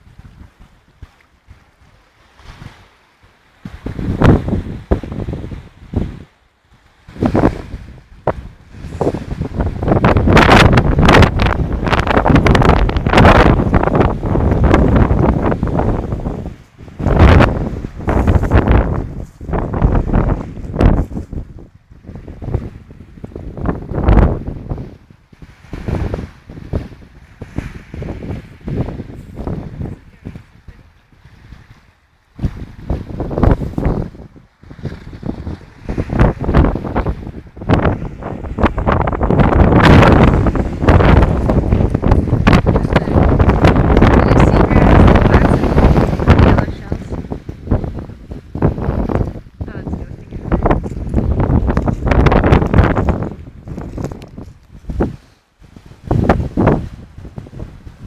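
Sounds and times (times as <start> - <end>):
wind buffeting microphone: 0.0 - 58.0
waves washing onto pebble beach: 1.5 - 56.8.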